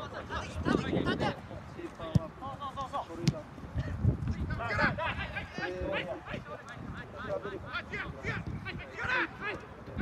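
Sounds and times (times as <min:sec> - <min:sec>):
players shouting: 0:07.1 - 0:09.9.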